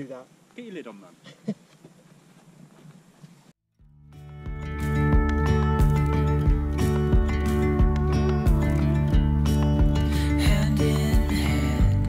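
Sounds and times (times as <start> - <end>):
faint outdoor background noise: 0.0 - 3.6
background music: 3.9 - 12.0.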